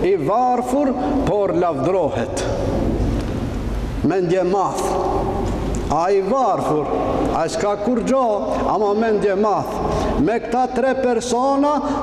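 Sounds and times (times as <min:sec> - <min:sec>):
man speaking into a microphone: 0:00.0 - 0:02.7, 0:04.0 - 0:12.0.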